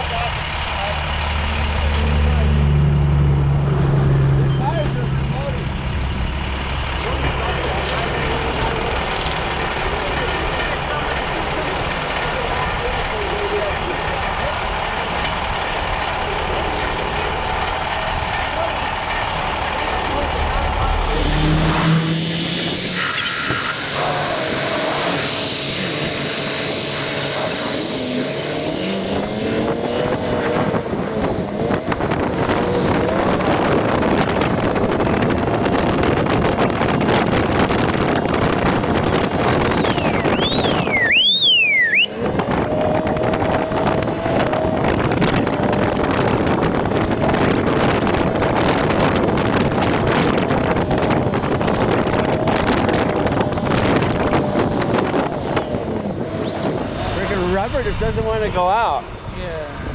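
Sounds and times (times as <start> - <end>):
vehicle engine running: 0.0 - 23.0, 23.7 - 57.8
heavy wind noise: 28.6 - 41.2, 42.0 - 59.9
warbling whistle: 39.5 - 42.2.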